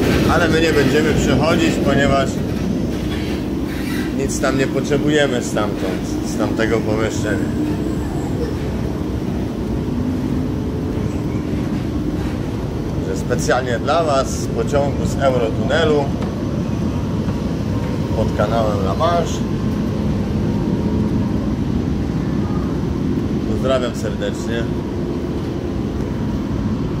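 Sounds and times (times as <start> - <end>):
train rumble inside carriage: 0.0 - 27.0.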